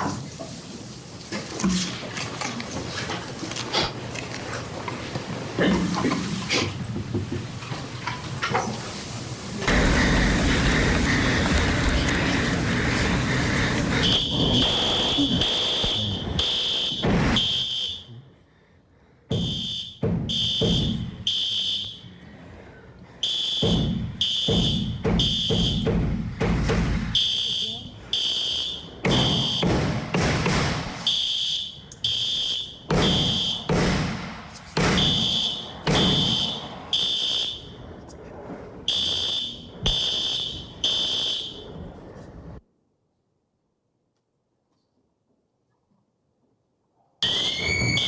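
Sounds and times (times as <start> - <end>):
fire alarm pulses: 14.0 - 18.2, 19.3 - 22.1, 23.2 - 26.0, 27.1 - 29.9, 31.0 - 33.7, 34.9 - 37.8, 38.9 - 41.9, 47.2 - 48.0.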